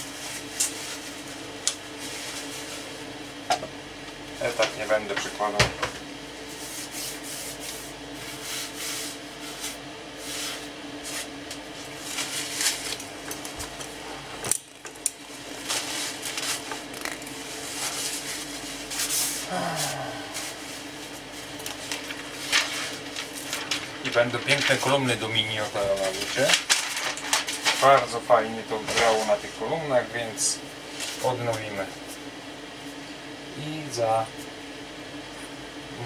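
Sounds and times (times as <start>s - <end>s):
low electrical hum: 0.0s - 36.0s
paper rustling: 8.5s - 13.8s, 15.6s - 19.4s, 21.4s - 29.6s, 30.9s - 31.8s.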